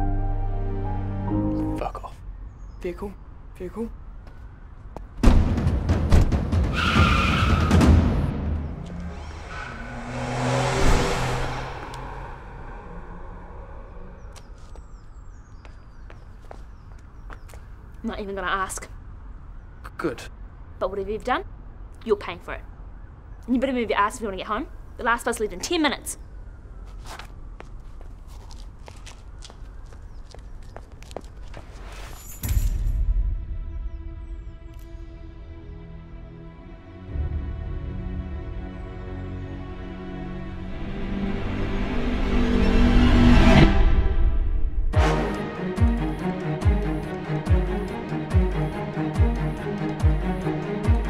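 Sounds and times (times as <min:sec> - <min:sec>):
car driving past: 0:08.4 - 0:14.8
light footsteps: 0:14.4 - 0:17.8, 0:26.8 - 0:32.3.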